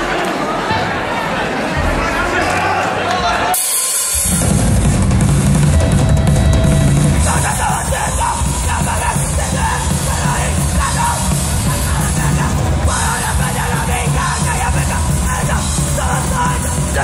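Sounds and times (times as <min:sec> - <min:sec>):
punk band playing live: 0:03.5 - 0:17.0.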